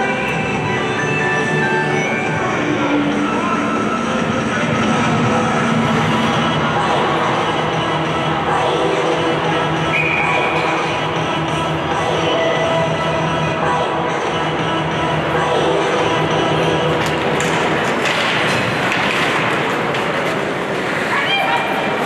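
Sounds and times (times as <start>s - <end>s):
ice rink noise: 0.0s - 22.0s
music over public address: 0.0s - 22.0s.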